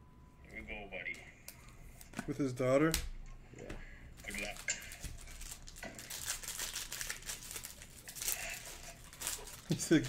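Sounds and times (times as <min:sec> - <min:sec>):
foil wrapper crinkling and tearing: 0:04.2 - 0:10.0.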